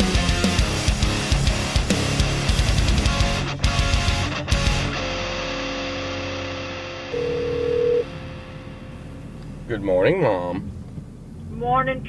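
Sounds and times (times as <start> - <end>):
electric guitar chord: 0.1 - 9.0
telephone ringing tone: 7.1 - 8.2.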